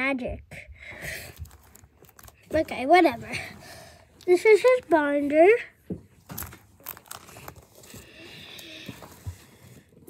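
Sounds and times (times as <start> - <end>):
plastic pages crinkling: 1.2 - 5.2, 6.2 - 10.0.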